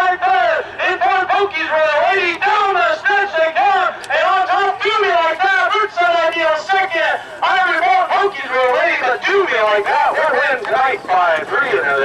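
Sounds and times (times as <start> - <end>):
man announcing race rapidly: 0.0 - 12.0.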